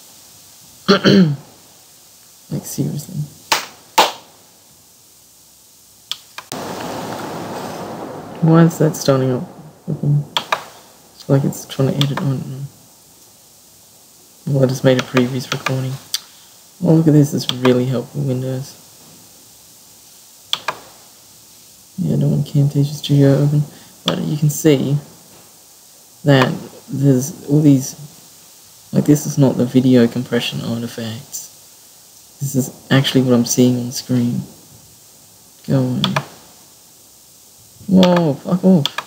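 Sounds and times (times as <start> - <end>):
faint steady hiss: 0.0 - 39.0
steady rushing noise: 1.6 - 39.0
small clicks: 6.1 - 6.6, 10.4 - 10.8, 15.0 - 16.4, 20.5 - 20.9, 36.0 - 36.4, 38.0 - 39.0
sharp click: 10.4 - 10.7, 20.5 - 20.8
computer mouse clicks: 20.5 - 20.8, 36.0 - 36.3.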